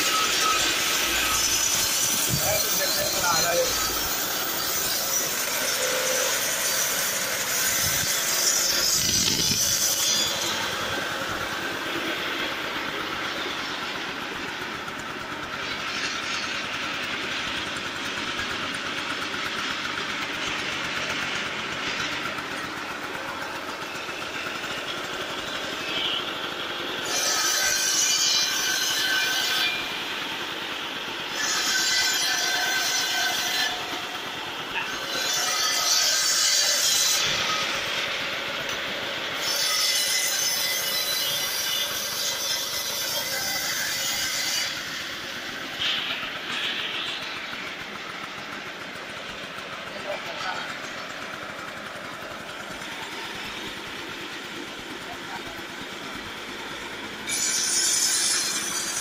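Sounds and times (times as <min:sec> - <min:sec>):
blade cutting wood: 0:00.0 - 0:59.0
saw blade ringing whine: 0:00.0 - 0:59.0
saw engine running: 0:00.0 - 0:59.0.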